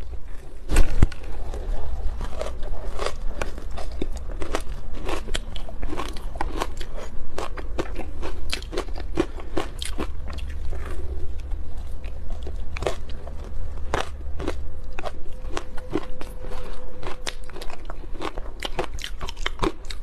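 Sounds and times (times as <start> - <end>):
ice crunching while chewed: 0.0 - 20.0
low hum: 0.0 - 20.0.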